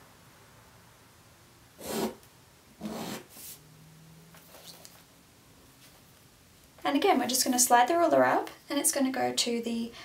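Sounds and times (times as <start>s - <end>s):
ruler rubbing on paper: 1.8s - 2.2s, 2.8s - 3.6s.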